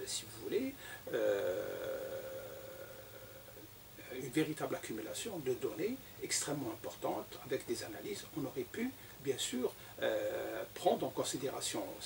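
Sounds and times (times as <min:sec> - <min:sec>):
faint room hum: 0:00.0 - 0:12.0
man's hesitation sound: 0:01.0 - 0:04.2.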